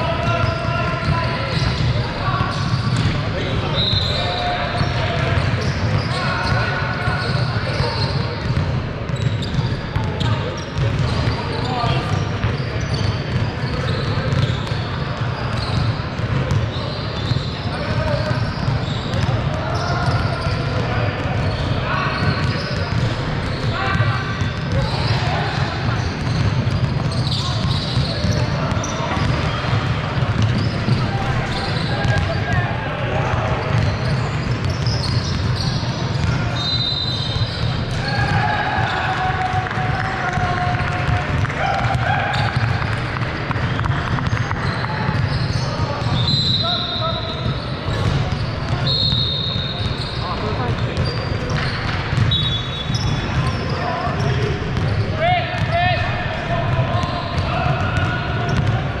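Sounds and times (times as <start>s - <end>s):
indistinct chatter: 0.0s - 59.0s
basketballs bouncing on hardwood: 0.4s - 3.2s, 8.0s - 23.8s, 24.4s - 32.5s, 33.5s - 36.4s, 37.4s - 46.2s, 50.7s - 53.7s, 56.7s - 58.9s.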